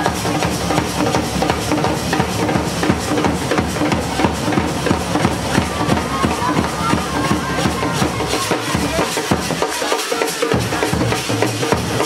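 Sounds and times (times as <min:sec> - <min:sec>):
brass band playing dance tune: 0:00.0 - 0:12.0
steady drum beat: 0:00.0 - 0:12.0.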